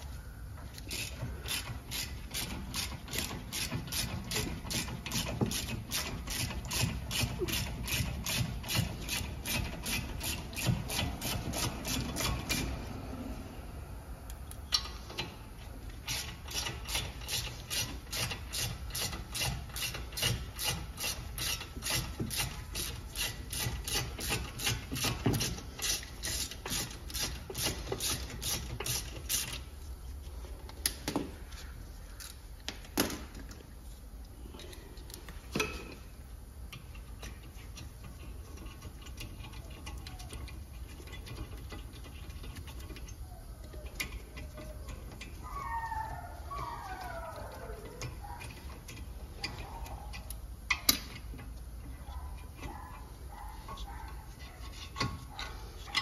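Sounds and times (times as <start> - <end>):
ratchet wrench clicking rapidly: 0.8 - 12.7, 16.0 - 29.7.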